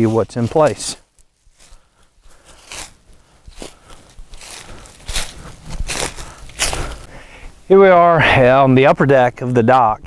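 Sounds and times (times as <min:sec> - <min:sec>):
footsteps crunching through dry leaves: 0:00.0 - 0:07.2.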